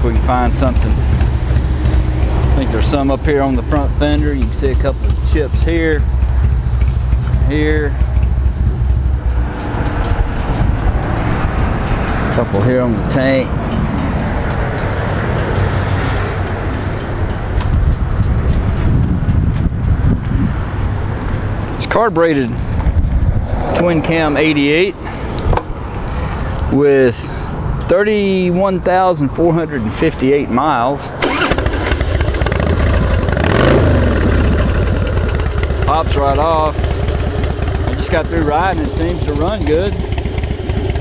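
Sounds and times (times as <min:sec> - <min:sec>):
motorcycle engine idling: 0:00.0 - 0:21.1, 0:31.2 - 0:41.0.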